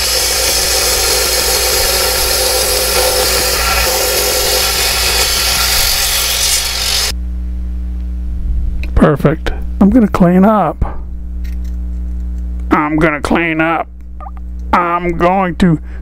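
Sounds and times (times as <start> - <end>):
wet saw grinding stone: 0.0 - 7.1
saw motor hum: 0.0 - 7.2.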